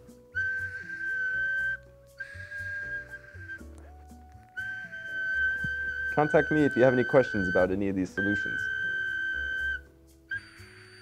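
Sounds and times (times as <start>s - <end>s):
high-pitched whistle blasts: 0.3s - 3.7s, 4.5s - 11.0s.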